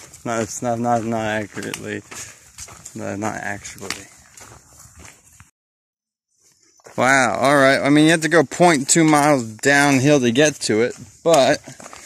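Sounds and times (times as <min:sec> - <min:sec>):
man's voice: 0:00.2 - 0:02.2, 0:02.9 - 0:04.1.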